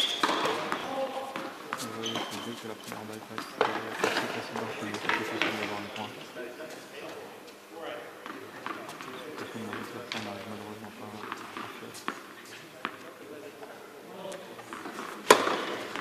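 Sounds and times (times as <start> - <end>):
voices talking and calling out: 0.4 - 7.4.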